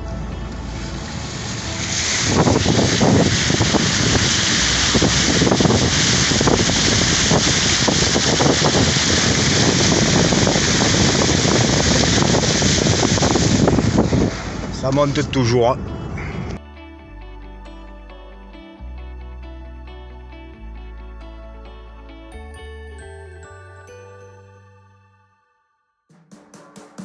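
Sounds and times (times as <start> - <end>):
floodwater rushing: 0.6 - 14.9.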